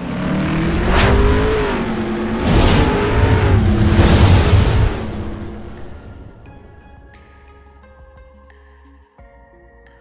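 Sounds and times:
deep rushing rumble: 0.4 - 7.5
sharp whoosh: 0.6 - 6.8.

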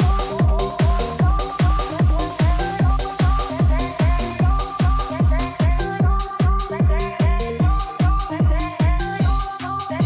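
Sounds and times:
kick drum: 0.0 - 9.5
bounce dance music: 0.0 - 10.0
repeating synth chords: 0.0 - 10.0.

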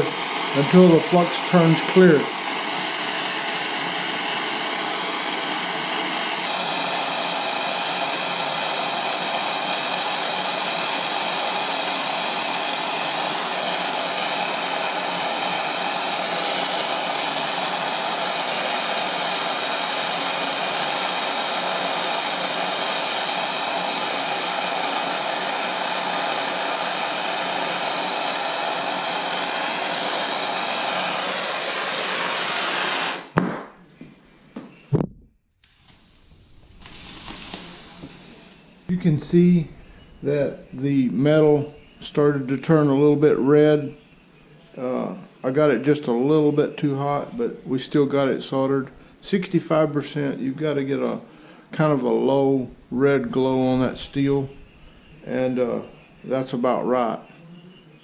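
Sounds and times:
gas torch roaring: 0.0 - 33.8, 34.9 - 44.0, 44.7 - 57.2.

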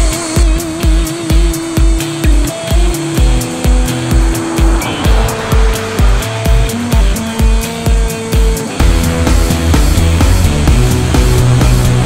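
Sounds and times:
music with kick drum beat: 0.0 - 12.0.

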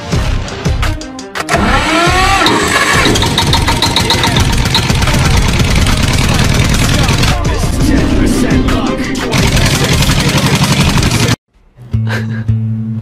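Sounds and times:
music: 0.0 - 13.0.

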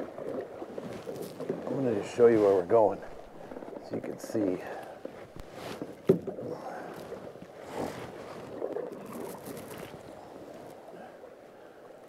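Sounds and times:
paddle strokes in water: 0.0 - 12.0
water splashing around canoe: 0.0 - 12.0.

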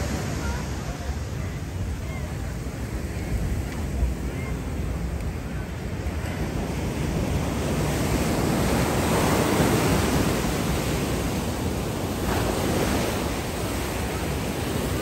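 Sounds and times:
ocean surf breaking on beach: 0.0 - 15.0.

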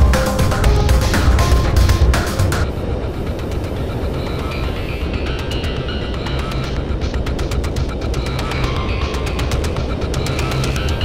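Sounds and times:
faint steady tones: 0.0 - 11.0.

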